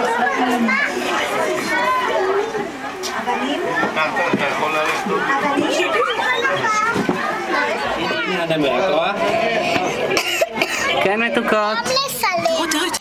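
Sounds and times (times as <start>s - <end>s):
children and adults chattering: 0.0s - 13.0s.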